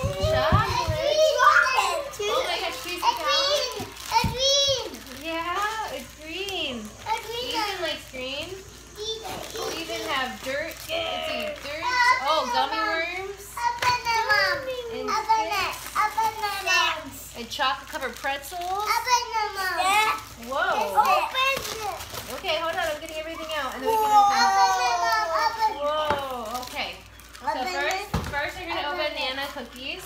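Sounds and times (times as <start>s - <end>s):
young children talking: 0.0s - 17.4s, 18.7s - 22.1s, 23.2s - 29.2s.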